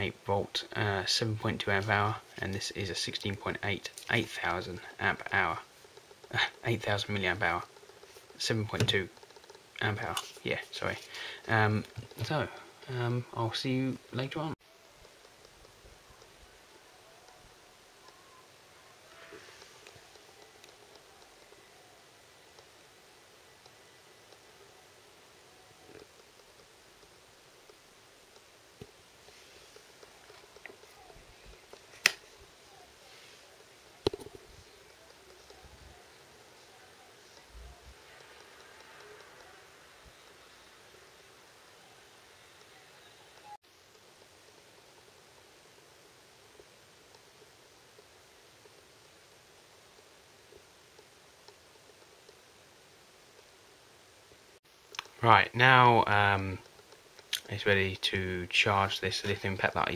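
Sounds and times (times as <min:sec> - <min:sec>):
faint background hiss: 0:00.0 - 0:59.9
soft rustling: 0:28.4 - 0:39.4
sharp clicks: 0:56.6 - 0:57.5.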